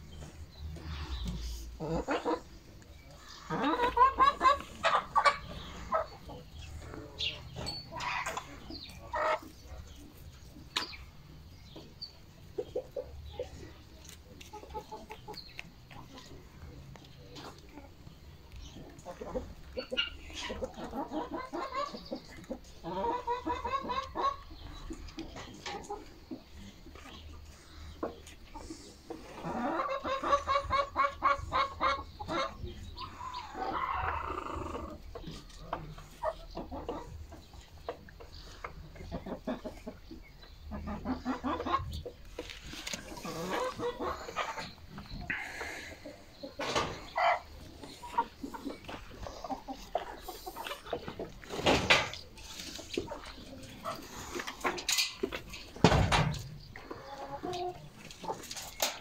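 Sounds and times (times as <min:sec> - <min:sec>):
chickens clucking: 0:00.0 - 0:59.0.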